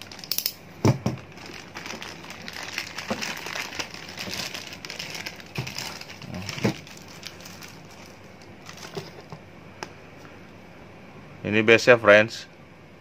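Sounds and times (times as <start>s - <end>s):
plastic bag crinkling: 0.0s - 0.4s, 1.0s - 9.4s.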